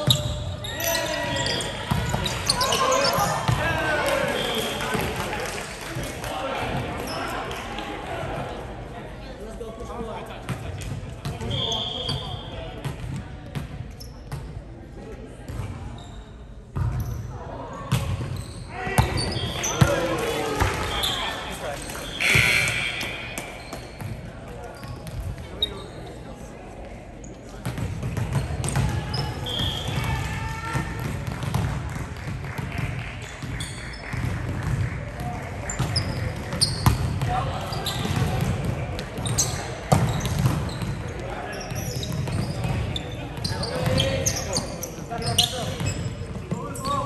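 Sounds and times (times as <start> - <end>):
players' voices and calls: 0.0 - 47.0
short high squeaks: 22.0 - 24.0
volleyball ball contacts: 27.5 - 44.3.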